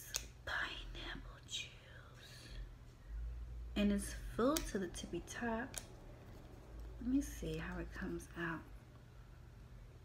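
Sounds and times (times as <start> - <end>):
soft whispering: 0.4 - 2.8.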